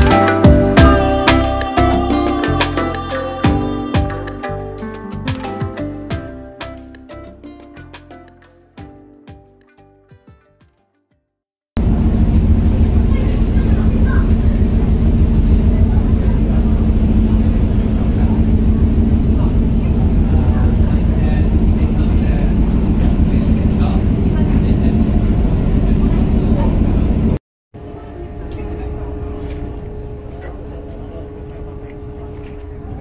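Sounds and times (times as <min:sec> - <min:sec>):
ferry engine rumbling: 0:11.8 - 0:33.0
higher-pitched engine hum: 0:11.8 - 0:33.0
faint voices: 0:13.0 - 0:33.0.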